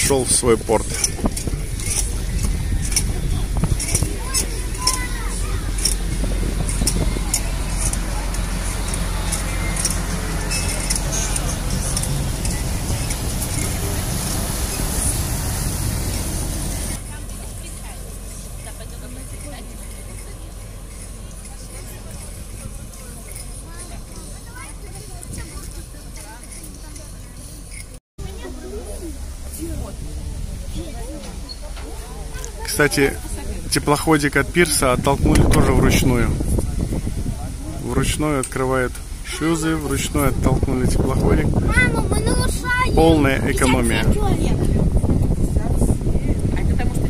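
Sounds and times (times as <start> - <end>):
boat diesel engine running: 0.0 - 47.0
propeller wash churning water: 0.0 - 47.0.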